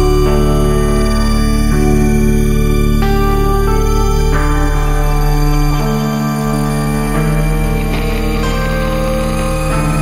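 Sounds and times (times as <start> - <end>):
low drone: 0.0 - 10.0
sustained synthesizer tones: 0.0 - 10.0.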